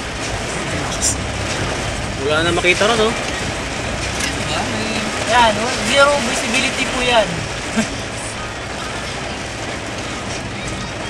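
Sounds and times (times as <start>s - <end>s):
heavy rain on car roof: 0.0s - 11.0s
low vehicle rumble: 0.0s - 11.0s.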